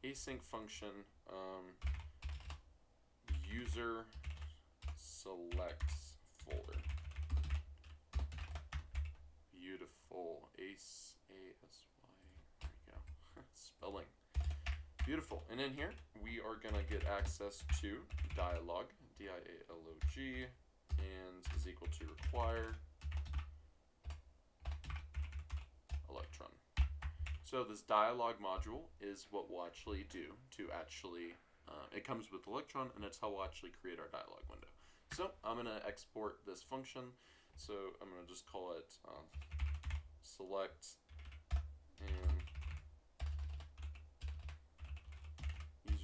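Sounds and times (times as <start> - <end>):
typing on computer keyboard: 1.8 - 2.6, 3.3 - 9.2, 14.3 - 16.0, 16.6 - 18.6, 20.0 - 26.1, 26.8 - 27.4, 39.3 - 40.0, 41.1 - 46.0.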